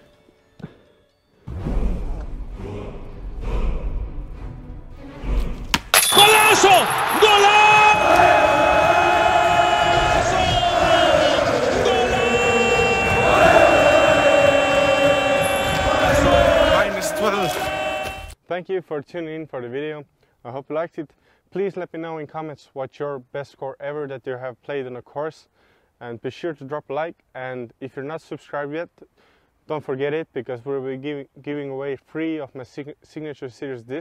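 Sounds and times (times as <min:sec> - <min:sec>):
low rumbling noise: 0:01.5 - 0:05.0.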